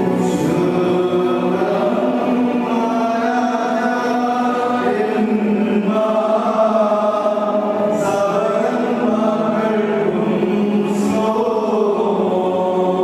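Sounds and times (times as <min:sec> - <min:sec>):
choir chanting: 0:00.0 - 0:13.0.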